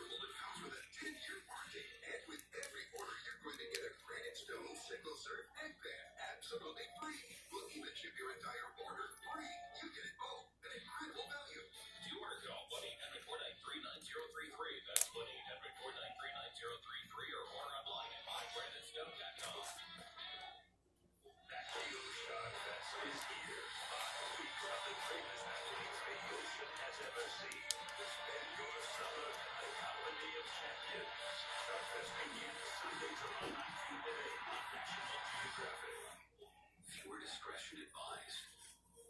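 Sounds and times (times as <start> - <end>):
television music: 0.0 - 39.0
television voices: 0.0 - 39.0.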